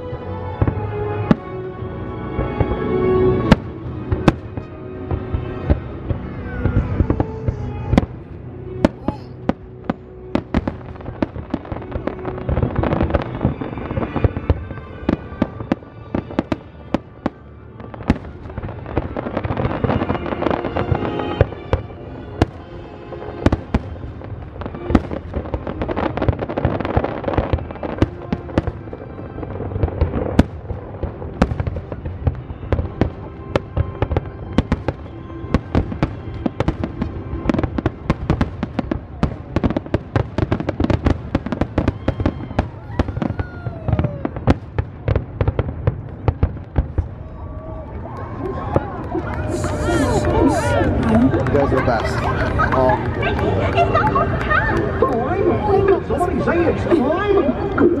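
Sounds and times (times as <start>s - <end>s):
fireworks bangs and crackles: 0.0s - 58.0s
music playing: 0.0s - 58.0s.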